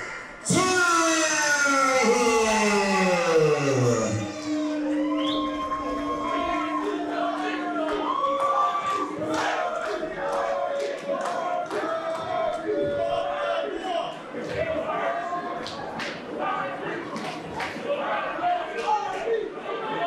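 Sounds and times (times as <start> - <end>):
ring announcer calling: 0.0 - 9.4
crowd noise in a hall: 0.0 - 20.0.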